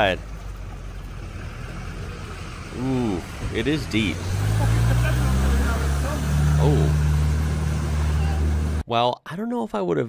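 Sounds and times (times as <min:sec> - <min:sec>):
car engine running low: 0:00.0 - 0:08.8.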